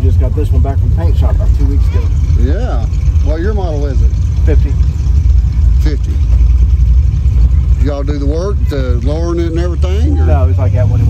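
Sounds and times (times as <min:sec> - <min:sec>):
car engine idling: 0:00.0 - 0:11.0
voices talking: 0:00.0 - 0:11.0.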